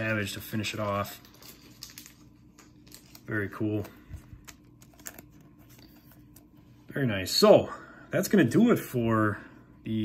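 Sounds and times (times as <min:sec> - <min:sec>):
plastic sleeve crinkling: 0:00.7 - 0:06.6.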